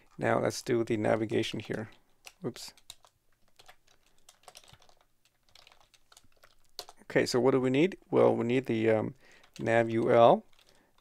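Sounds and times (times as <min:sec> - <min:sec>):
keyboard typing: 0:01.1 - 0:07.1, 0:09.3 - 0:11.0.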